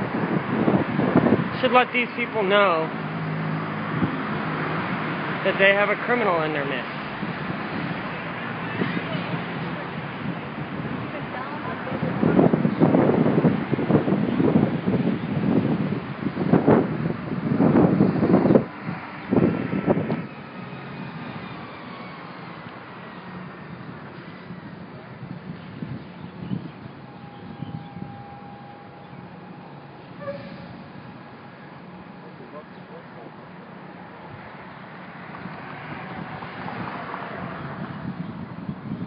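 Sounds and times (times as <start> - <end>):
road traffic passing: 0.0 - 39.0.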